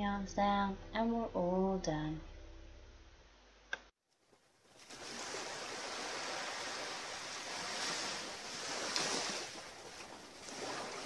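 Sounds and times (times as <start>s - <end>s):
waves lapping on rocky shore: 4.7s - 11.0s.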